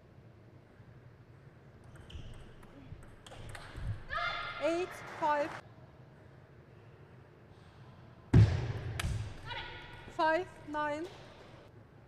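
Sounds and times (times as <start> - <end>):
ping pong ball clicks: 1.8 - 3.8.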